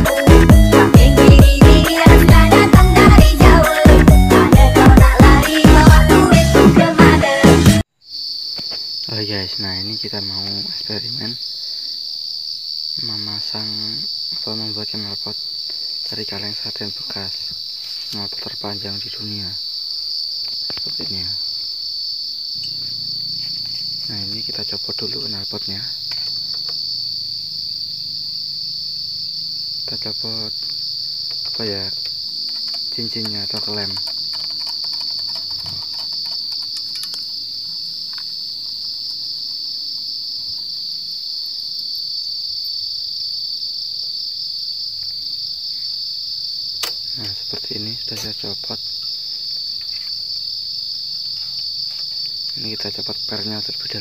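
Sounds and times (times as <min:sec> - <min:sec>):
insects chirring: 0:00.0 - 0:54.0.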